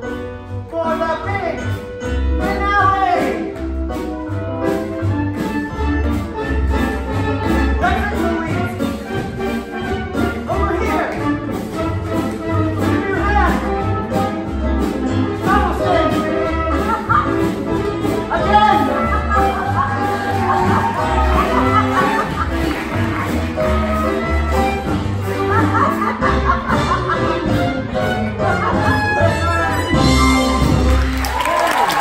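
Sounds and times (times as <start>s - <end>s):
orchestra playing dance music: 0.0s - 32.0s.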